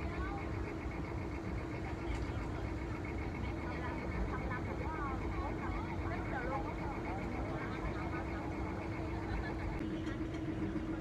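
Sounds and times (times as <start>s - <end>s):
indistinct voices: 0.0s - 9.8s
boat engine running: 0.0s - 11.0s.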